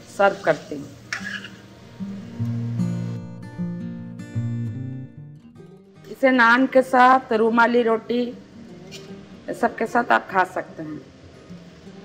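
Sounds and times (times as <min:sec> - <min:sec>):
acoustic guitar music: 0:01.0 - 0:12.0.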